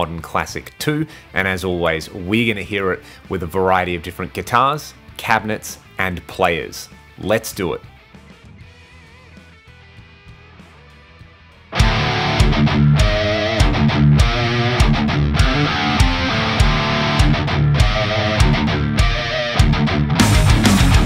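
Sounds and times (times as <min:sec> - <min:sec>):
drums and bass: 0:04.9 - 0:21.0
distorted electric guitar: 0:08.3 - 0:21.0.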